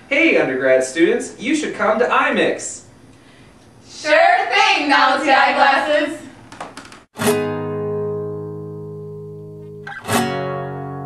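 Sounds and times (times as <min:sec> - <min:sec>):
guitar chord strummed and ringing: 0:07.2 - 0:11.0.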